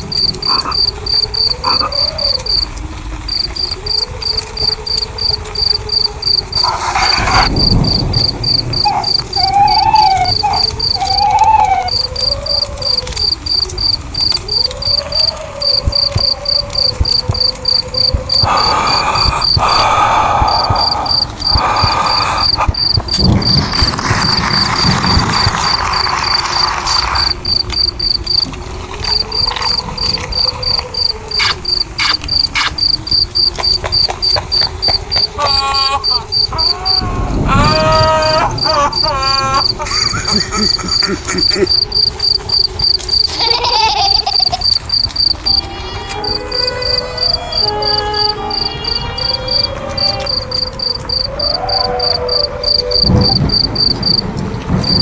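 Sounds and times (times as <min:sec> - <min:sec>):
crickets chirping: 0:00.0 - 0:55.0
wavering insect whine: 0:00.0 - 0:55.0.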